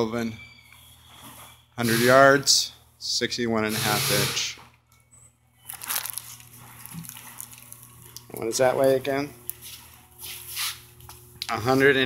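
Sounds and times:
faint steady hum: 0:00.0 - 0:12.0
plastic film crinkling: 0:05.6 - 0:10.0.

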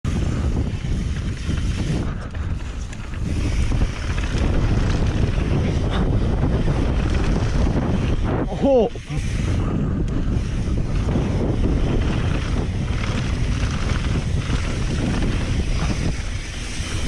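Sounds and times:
bike rumbling on dirt trail: 0:00.0 - 0:17.0
wind buffeting microphone: 0:00.0 - 0:17.0.

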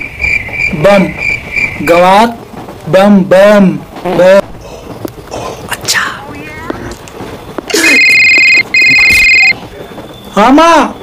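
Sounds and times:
loud electronic beep tone: 0:07.8 - 0:09.6.

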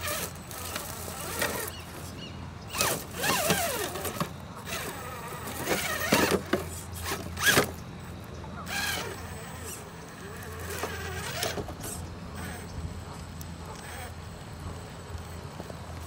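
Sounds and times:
rc car electric motor whining: 0:00.0 - 0:12.7, 0:13.8 - 0:14.2.

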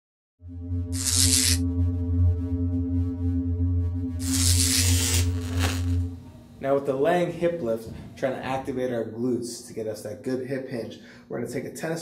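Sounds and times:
low synth drone: 0:00.4 - 0:08.0.

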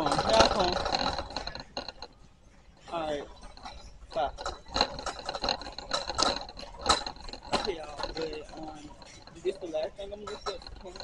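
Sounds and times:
rattling: 0:00.0 - 0:11.0.

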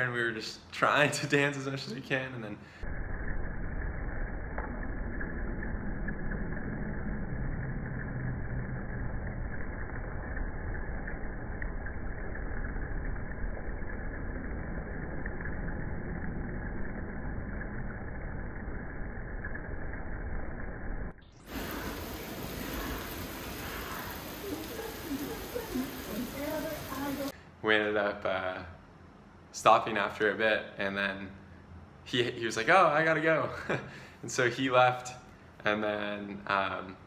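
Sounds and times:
rain and hail hissing: 0:21.4 - 0:27.4.

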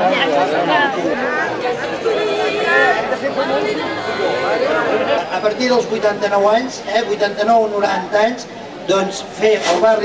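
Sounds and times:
crowd of diners talking: 0:00.0 - 0:10.0.

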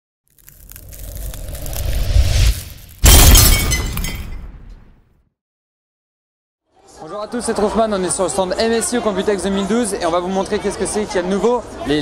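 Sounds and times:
glass shattering crash: 0:02.4 - 0:04.8.

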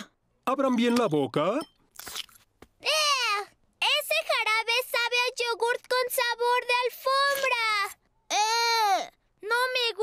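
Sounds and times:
cartoon child voice speaking: 0:02.8 - 0:10.0.

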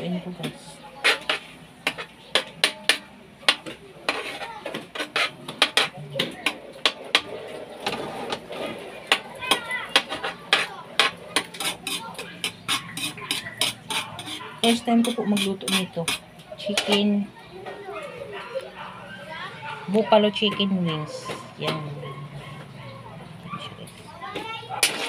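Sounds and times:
metal spoon scraping wok: 0:01.0 - 0:03.0, 0:04.0 - 0:06.0, 0:07.8 - 0:17.1.

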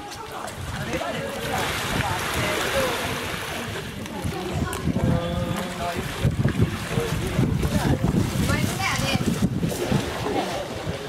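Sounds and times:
faint voices: 0:00.0 - 0:11.0
wind buffeting microphone: 0:00.0 - 0:11.0.

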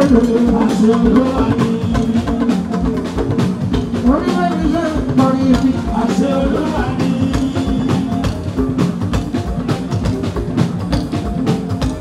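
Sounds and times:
drum thumps: 0:00.0 - 0:12.0
live band playing: 0:00.0 - 0:12.0.

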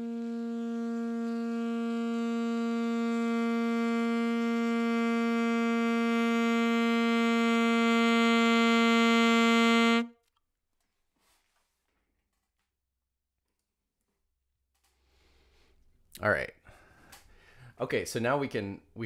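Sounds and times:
saxophone long note: 0:00.0 - 0:10.2.

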